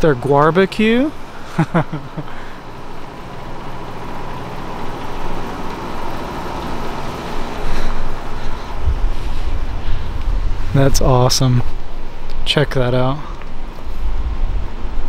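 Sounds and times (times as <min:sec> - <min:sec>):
street traffic hum: 0:00.0 - 0:15.0
low rumble: 0:07.6 - 0:12.0.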